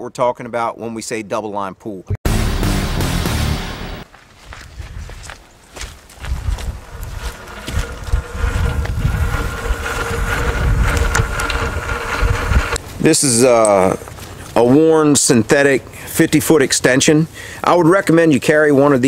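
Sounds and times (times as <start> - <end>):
loud intro sting: 2.2 - 4.0
electric winch whining: 6.6 - 12.9.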